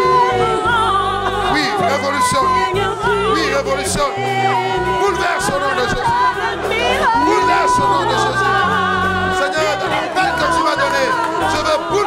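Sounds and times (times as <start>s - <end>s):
sustained bass notes: 0.0s - 12.0s
voices singing: 0.0s - 12.0s.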